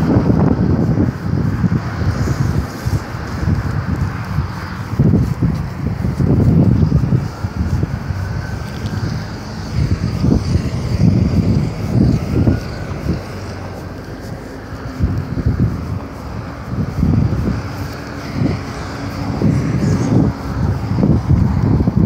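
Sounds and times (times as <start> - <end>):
faint vehicle: 0.0 - 22.0
wind buffeting microphone: 0.0 - 22.0.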